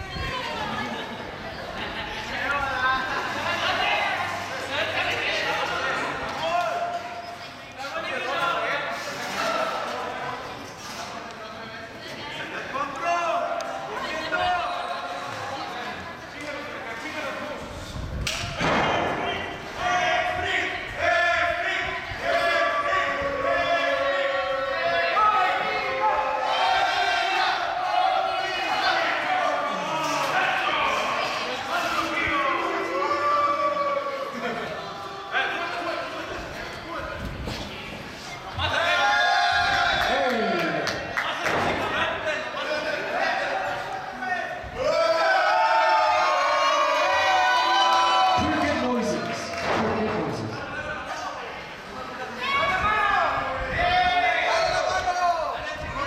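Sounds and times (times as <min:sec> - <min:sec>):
loud thud: 0:18.4 - 0:19.5.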